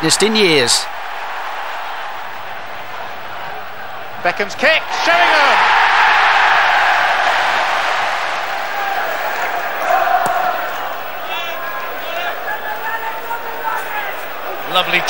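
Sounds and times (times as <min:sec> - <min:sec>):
stadium crowd roaring and cheering: 0:00.0 - 0:15.0.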